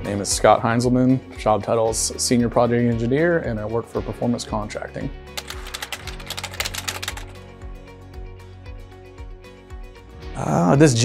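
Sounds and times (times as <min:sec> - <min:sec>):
background music with steady beat: 0:00.0 - 0:11.0
rapid typing clicks: 0:05.4 - 0:07.3.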